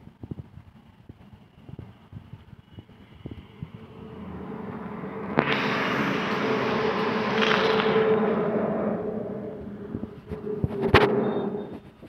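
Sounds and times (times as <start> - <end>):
vehicle engine running: 0.1 - 12.0.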